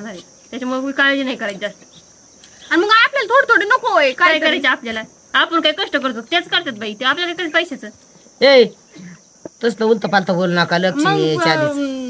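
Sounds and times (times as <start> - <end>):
people talking: 0.0 - 1.8, 2.7 - 12.0
crickets droning: 0.0 - 12.0.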